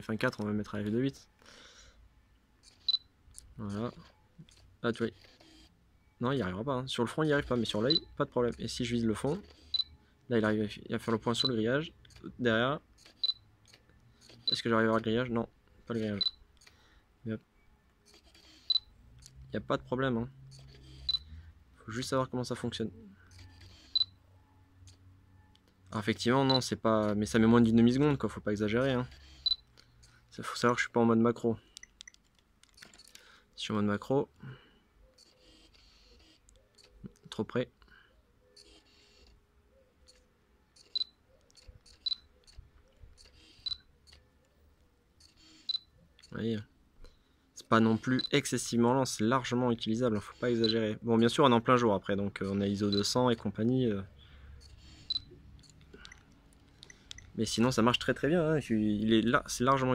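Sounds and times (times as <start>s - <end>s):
camera focus beep: 2.6s - 3.1s, 4.0s - 6.2s, 7.4s - 8.7s, 9.3s - 10.0s, 11.1s - 12.3s, 13.0s - 15.0s, 16.2s - 16.8s, 18.0s - 18.9s, 20.5s - 21.4s, 23.3s - 24.2s, 26.4s - 26.7s, 29.1s - 30.2s, 38.6s - 39.4s, 40.1s - 42.6s, 43.2s - 44.2s, 45.2s - 46.4s, 47.8s - 48.4s, 50.2s - 50.9s, 52.8s - 53.2s, 54.6s - 57.4s
faint lens focusing clicks: 38.6s - 39.4s, 40.0s - 44.6s, 54.6s - 57.4s
high beep: 55.1s - 55.3s.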